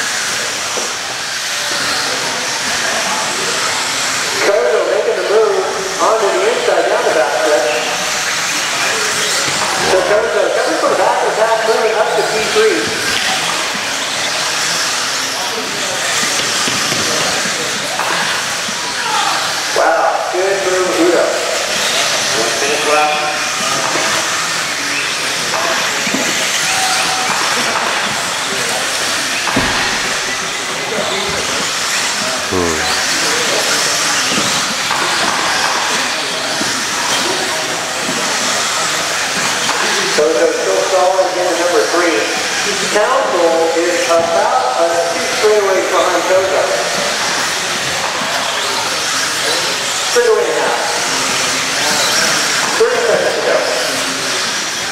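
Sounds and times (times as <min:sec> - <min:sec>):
indistinct voices: 0:00.0 - 0:54.9
rc car motors and tyres on dirt: 0:12.8 - 0:19.7, 0:21.6 - 0:40.4, 0:45.1 - 0:50.2, 0:50.8 - 0:54.9.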